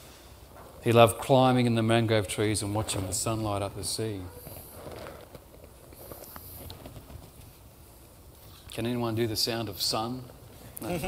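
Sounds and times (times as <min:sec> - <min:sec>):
paper hiss: 0:02.8 - 0:08.7
book pages rustling: 0:04.4 - 0:07.6.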